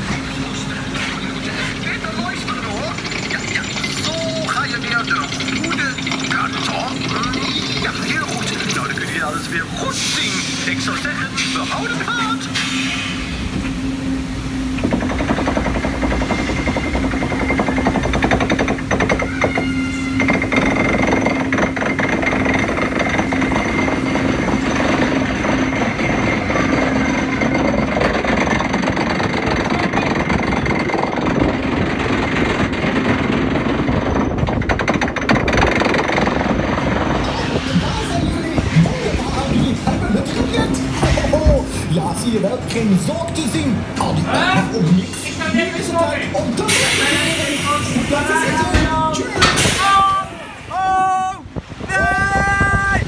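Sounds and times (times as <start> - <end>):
steady low hum: 0.0 - 50.8
lift chain clattering: 1.0 - 12.8, 14.7 - 50.3.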